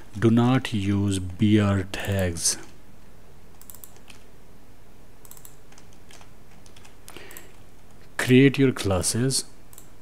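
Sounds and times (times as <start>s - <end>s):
steady low hum: 0.0s - 10.0s
computer keyboard typing: 3.6s - 4.2s, 5.3s - 7.6s.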